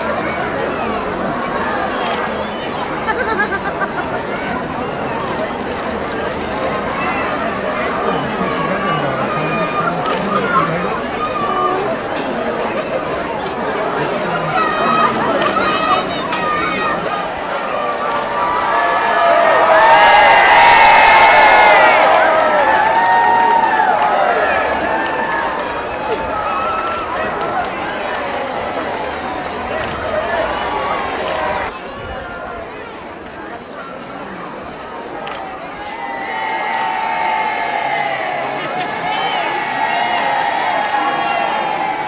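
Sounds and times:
crowd chattering: 0.0s - 42.0s.

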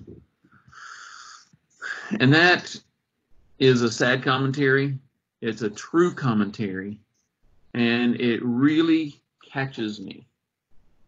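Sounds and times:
man breathing in through mouth: 0.5s - 2.1s.

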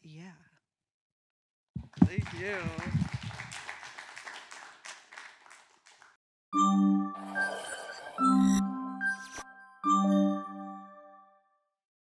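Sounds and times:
bell-like jingle chord: 6.6s - 11.4s.

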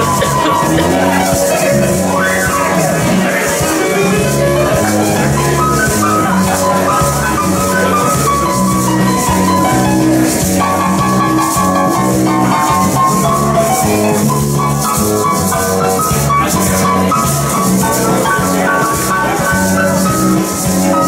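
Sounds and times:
electric bass: 0.0s - 21.0s
electric keyboard: 0.0s - 21.0s
maracas shaking: 0.0s - 21.0s.

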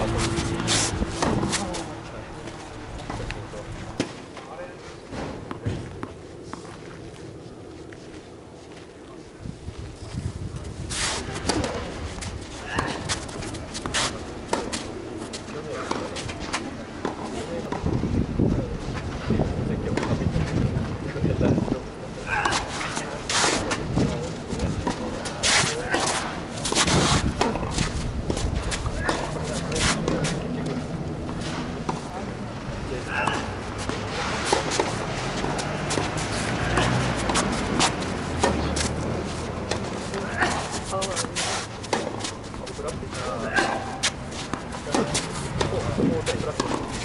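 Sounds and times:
tennis ball hit by rackets: 33.2s - 38.9s, 43.7s - 47.0s.

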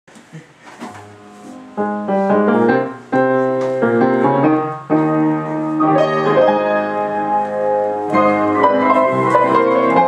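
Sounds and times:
grand piano playing ragtime chords: 1.0s - 10.0s.

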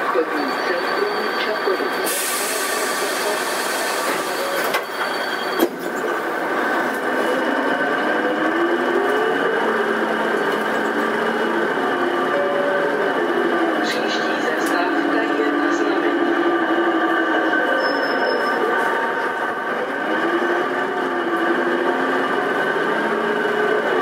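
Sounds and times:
bus engine running: 0.0s - 24.0s.

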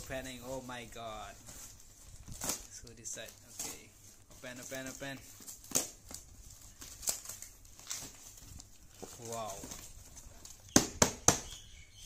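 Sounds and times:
paper bag tearing and crinkling: 0.0s - 10.7s.

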